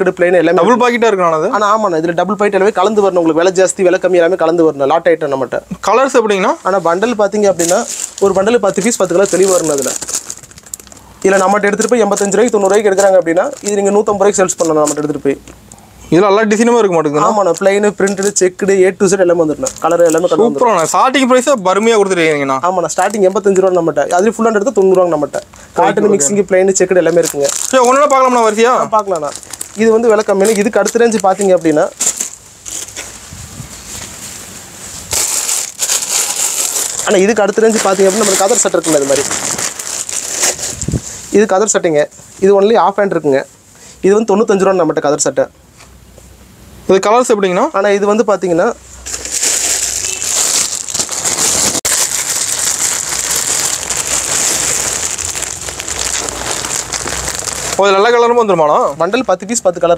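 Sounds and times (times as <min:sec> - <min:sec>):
man talking: 0:00.0 - 0:10.1, 0:11.2 - 0:32.0, 0:37.0 - 0:39.5, 0:41.3 - 0:45.5, 0:57.7 - 0:59.9
plastic wrap crinkling: 0:05.9 - 0:15.5, 0:16.2 - 0:34.3, 0:34.9 - 0:41.8, 0:49.0 - 0:59.8.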